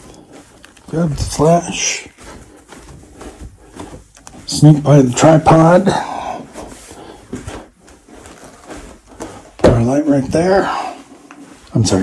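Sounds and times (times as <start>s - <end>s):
person speaking: 0.0s - 6.8s, 9.6s - 12.0s
faint rustling: 0.0s - 12.0s
footsteps on carpet: 0.0s - 12.0s.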